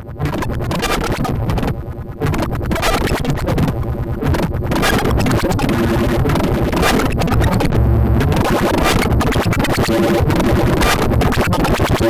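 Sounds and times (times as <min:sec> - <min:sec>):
harsh gritty synthesizer: 0:00.1 - 0:12.0.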